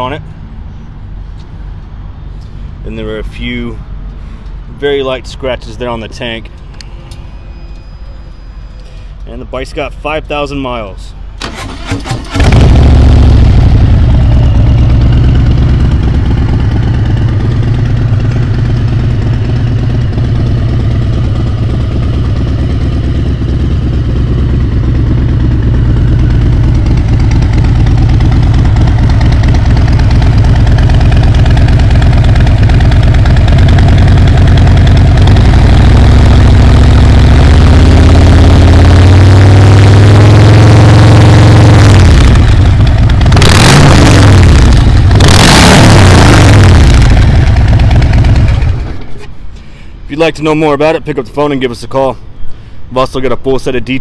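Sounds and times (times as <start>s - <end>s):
motorcycle engine idling and revving: 11.4s - 49.5s.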